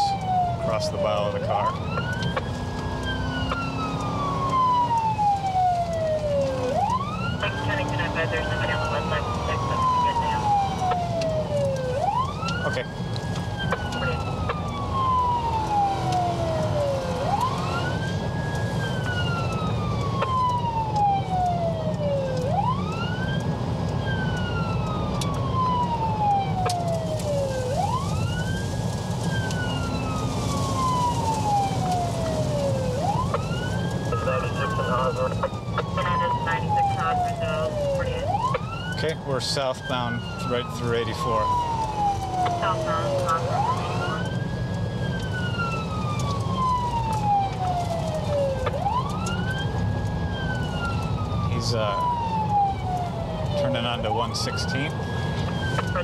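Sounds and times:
engine and road rumble: 0.0s - 56.0s
police siren wailing: 0.0s - 56.0s.

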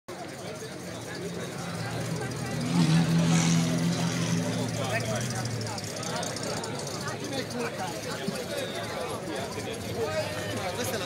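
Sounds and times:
crowd chatter: 0.1s - 11.0s
car engine running at low revs: 0.2s - 8.7s.

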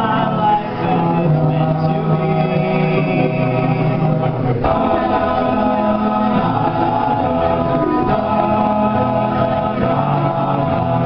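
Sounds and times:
male a cappella group singing: 0.0s - 11.0s.

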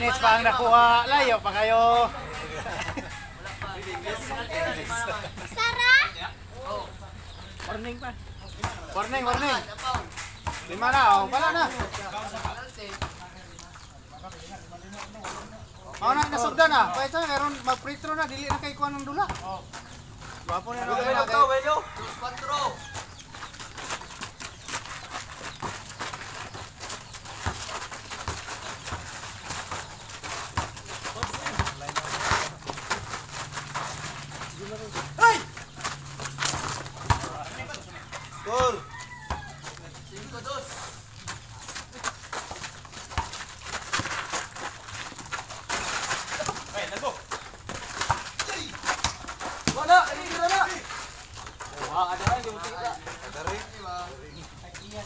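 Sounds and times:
players calling out: 0.0s - 13.6s, 15.9s - 44.0s
basketball and feet thudding: 7.3s - 55.0s.

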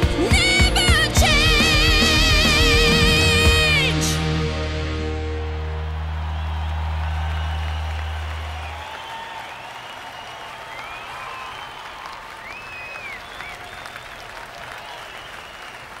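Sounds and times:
song low note: 3.0s - 8.9s
audience applauding and cheering: 4.8s - 16.0s
high shouts: 5.3s - 13.7s.

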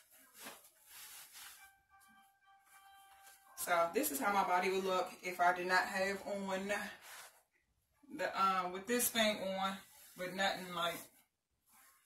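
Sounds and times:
clothing rustling: 0.0s - 3.7s, 6.7s - 7.5s, 9.2s - 12.0s
faint background music: 0.0s - 7.4s.

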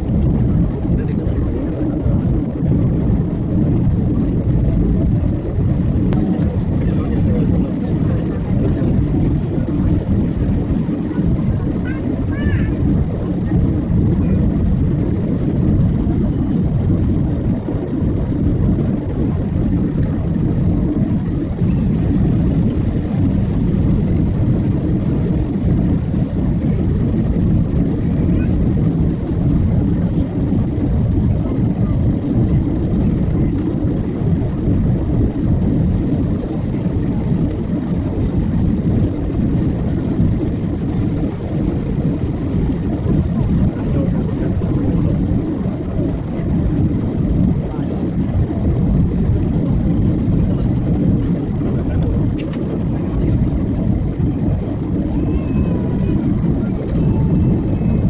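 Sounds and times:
jet engine and airflow roar: 0.0s - 58.0s.

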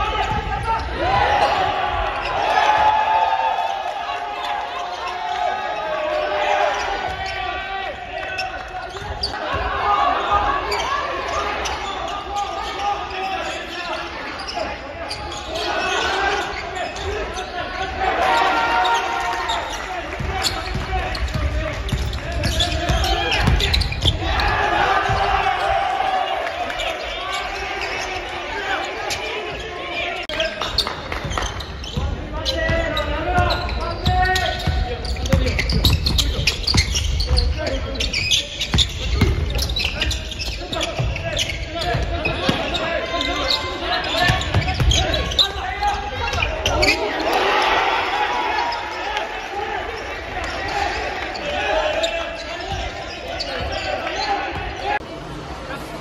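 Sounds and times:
players' voices echoing: 0.0s - 56.0s.

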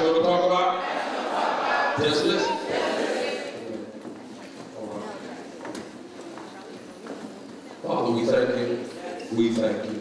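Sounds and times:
man's amplified voice: 0.0s - 0.8s, 2.0s - 2.8s, 7.8s - 10.0s.

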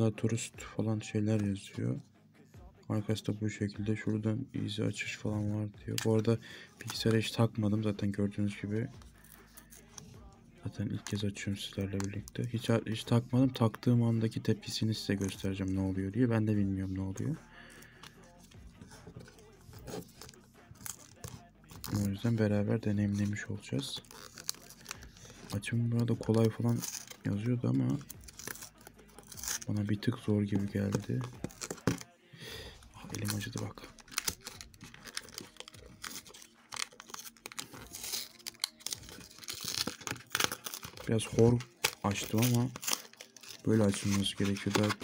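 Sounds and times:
paper package rustling: 18.8s - 32.1s, 33.0s - 45.0s
sharp paper crackles: 24.0s - 25.5s, 33.1s - 45.0s
cardboard being torn: 28.2s - 29.7s, 34.0s - 45.0s.

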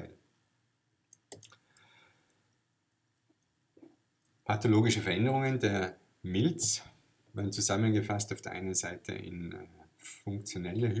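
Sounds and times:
computer mouse clicks: 1.1s - 2.4s.

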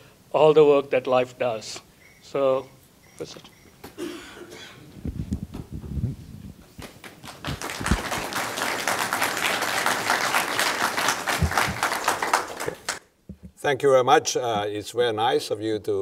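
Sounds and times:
audience applauding: 6.8s - 13.0s.

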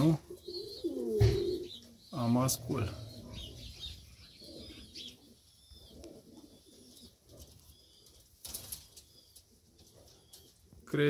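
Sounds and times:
pigeon cooing softly: 0.0s - 11.0s.

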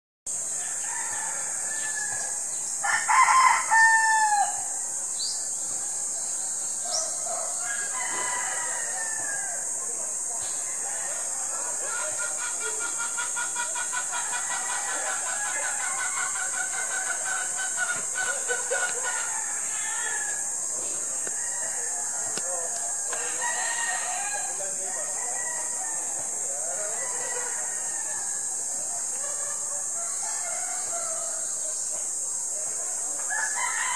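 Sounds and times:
steady high-pitched hiss: 0.3s - 33.9s
rooster crowing: 0.6s - 4.8s, 7.3s - 9.7s, 21.2s - 31.6s, 33.3s - 33.9s
faint rooster calls: 7.5s - 9.6s.

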